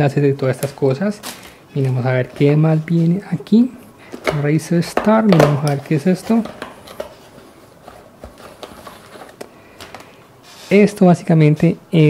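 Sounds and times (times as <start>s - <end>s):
cardboard flaps rustling: 4.2s - 10.7s.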